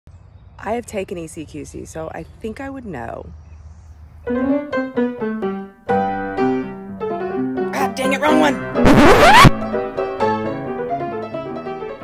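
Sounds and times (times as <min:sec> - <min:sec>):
piano notes: 0:04.3 - 0:12.0.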